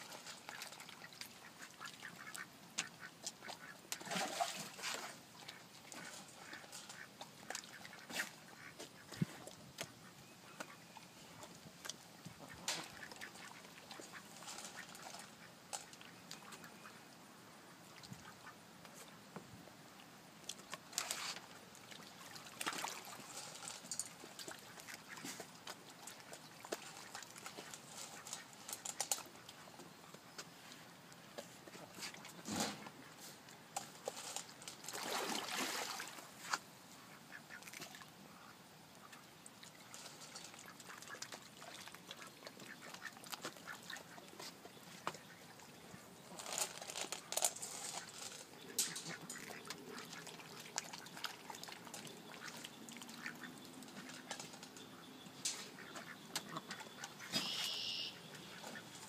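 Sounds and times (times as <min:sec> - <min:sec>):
water splashes: 0:00.0 - 0:09.5, 0:20.9 - 0:29.6, 0:34.7 - 0:36.6, 0:39.5 - 0:44.3, 0:48.9 - 0:54.5
ducks quacking: 0:00.4 - 0:04.1, 0:52.3 - 0:59.0.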